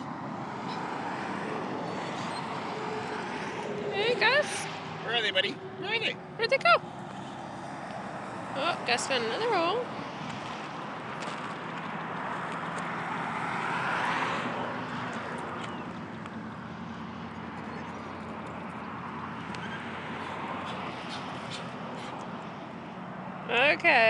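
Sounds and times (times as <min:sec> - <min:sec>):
outdoor background noise: 0:00.0 - 0:24.0
vehicle passing by: 0:00.0 - 0:24.0.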